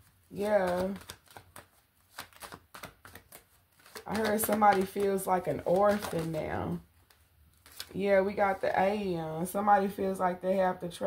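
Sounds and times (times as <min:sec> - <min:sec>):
cards being shuffled: 0:00.0 - 0:08.0.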